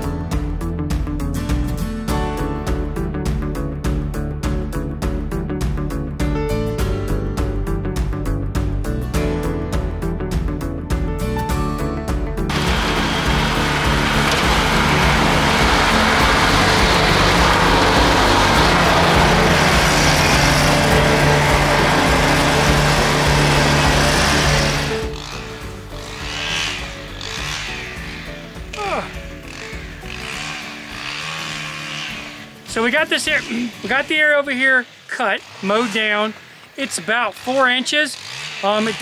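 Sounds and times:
background music: 0:00.0 - 0:36.3
riding lawn mower engine: 0:12.5 - 0:39.0.

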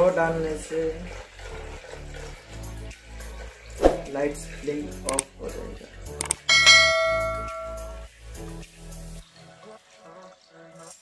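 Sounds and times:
quick clicks: 0:06.2 - 0:06.4
notification bell ding: 0:06.4 - 0:08.0.

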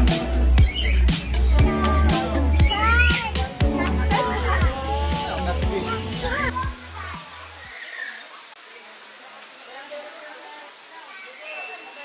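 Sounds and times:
background music: 0:00.0 - 0:07.6
children chattering in a crowd: 0:01.2 - 0:12.0.

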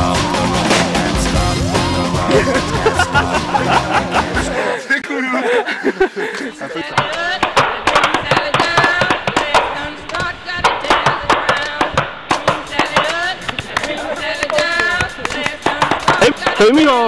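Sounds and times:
players calling out: 0:01.6 - 0:10.4.

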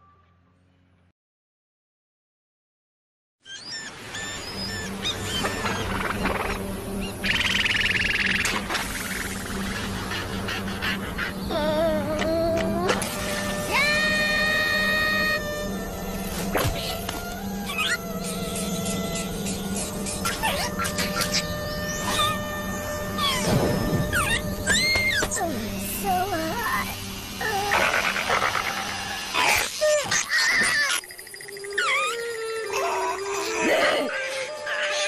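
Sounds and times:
cartoon background music: 0:03.6 - 0:35.0
wordless cartoon vocal noises: 0:08.9 - 0:35.0.

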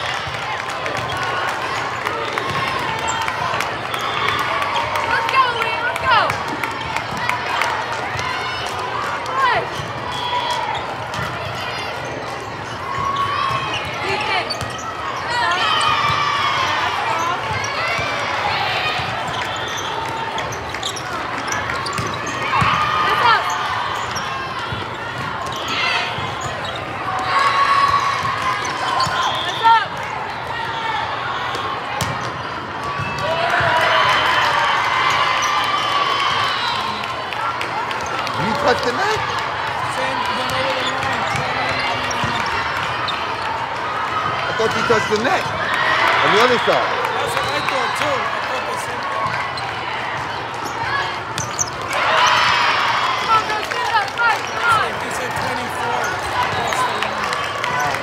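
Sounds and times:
players calling out: 0:00.0 - 0:58.0
din of voices in a hall: 0:36.9 - 0:58.0.

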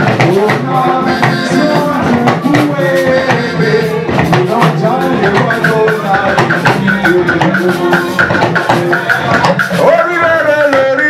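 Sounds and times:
drums and percussion: 0:00.0 - 0:11.0
voices singing worship music: 0:00.0 - 0:11.0.

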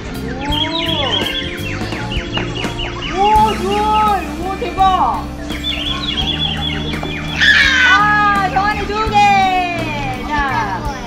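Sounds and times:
background music: 0:00.0 - 0:11.0
children squealing and calling: 0:00.0 - 0:11.0.

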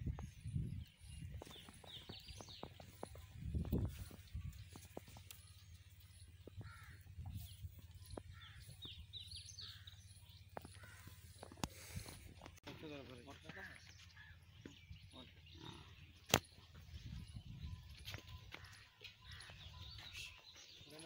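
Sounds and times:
birds chirping: 0:00.0 - 0:21.0.

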